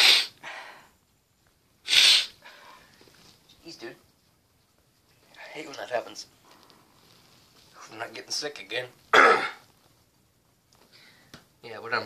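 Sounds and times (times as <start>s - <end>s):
man clearing his throat: 9.1s - 9.6s.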